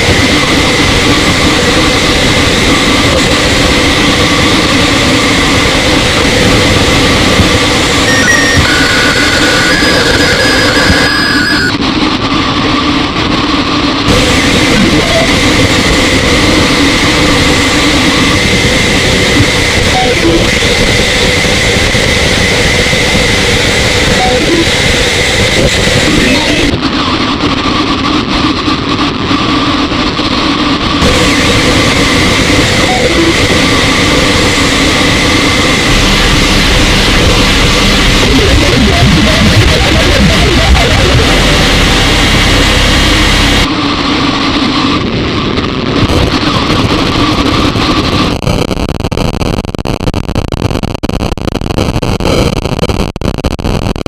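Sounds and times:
harsh distorted noise music: 0.0s - 11.8s, 14.1s - 20.7s, 31.0s - 43.7s
loud dense wall of noise: 0.0s - 54.0s
steady held tones: 7.8s - 11.8s, 32.7s - 43.7s.

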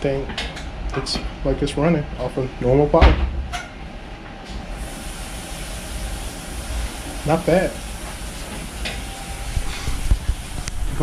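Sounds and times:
cooling fans hissing: 0.0s - 11.0s.

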